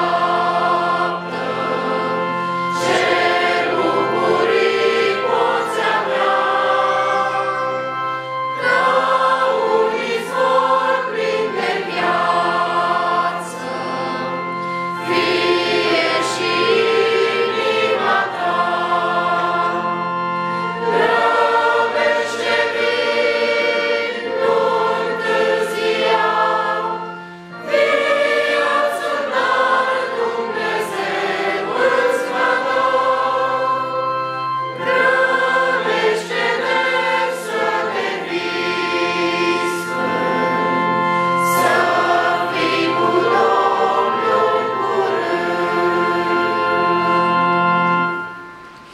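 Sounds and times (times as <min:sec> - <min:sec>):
choir singing a hymn: 0:00.0 - 0:48.9.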